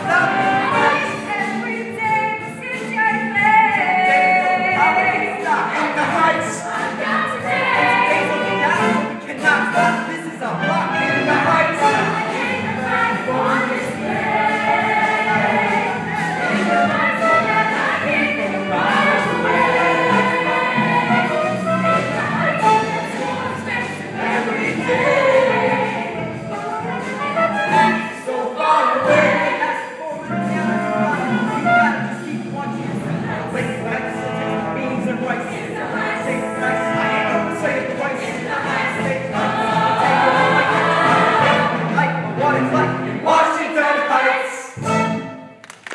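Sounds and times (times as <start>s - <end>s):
instrumental accompaniment: 0.0s - 43.4s, 44.8s - 45.9s
chorus singing: 0.0s - 45.4s.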